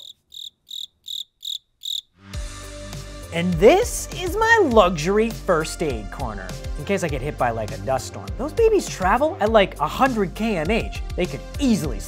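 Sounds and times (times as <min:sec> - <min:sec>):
crickets chirping: 0:00.0 - 0:02.1.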